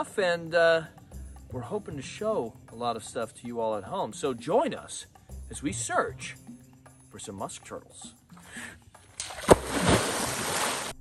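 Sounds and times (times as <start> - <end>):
loud splash into river: 9.2 - 11.0.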